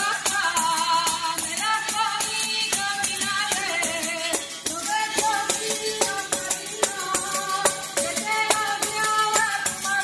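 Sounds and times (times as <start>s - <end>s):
folk singing: 0.0s - 10.0s
hand percussion strikes: 0.0s - 10.0s.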